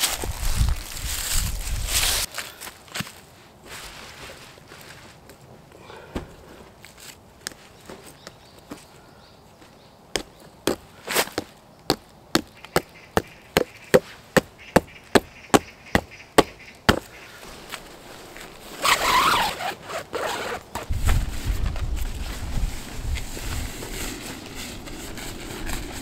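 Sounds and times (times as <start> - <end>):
rustling: 0.0 - 9.0, 16.4 - 26.0.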